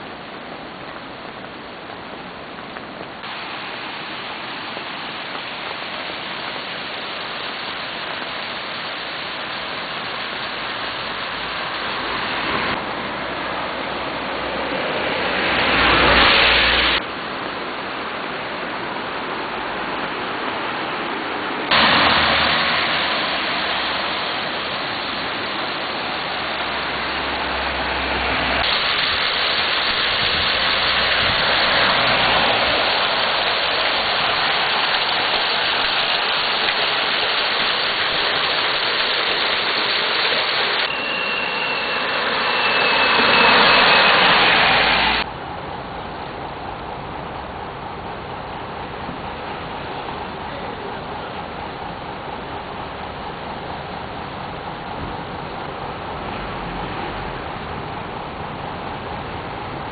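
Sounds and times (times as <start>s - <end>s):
rushing river water: 0.0s - 59.9s
faint falling whine: 40.4s - 45.3s.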